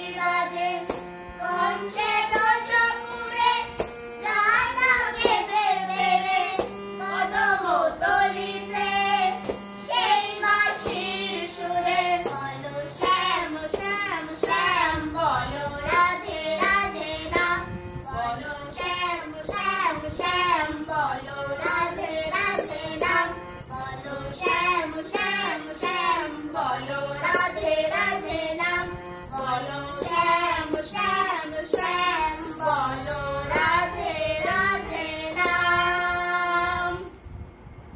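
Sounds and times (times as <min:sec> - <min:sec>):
woman and girl singing: 0:00.0 - 0:37.2
harmonium: 0:00.0 - 0:37.3.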